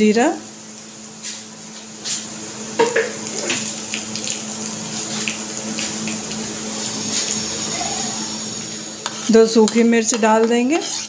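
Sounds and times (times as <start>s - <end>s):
spices sizzling in hot oil: 0.0s - 11.0s.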